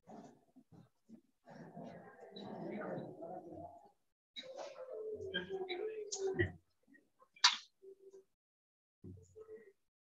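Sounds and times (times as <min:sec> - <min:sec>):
faint indistinct voices: 0:00.0 - 0:08.4.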